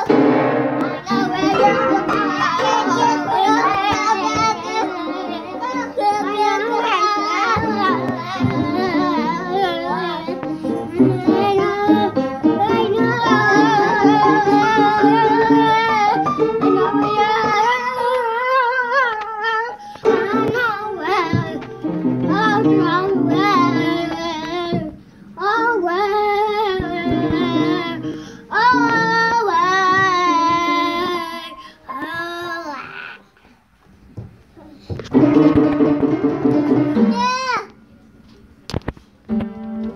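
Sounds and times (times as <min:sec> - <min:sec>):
children singing: 0:00.0 - 0:33.1
children playing piano: 0:00.0 - 0:33.2, 0:34.6 - 0:38.6, 0:39.3 - 0:39.9.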